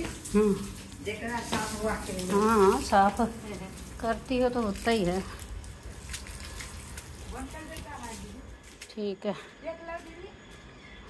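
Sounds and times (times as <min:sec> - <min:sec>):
hose water splashing on tiles: 0:00.0 - 0:08.9.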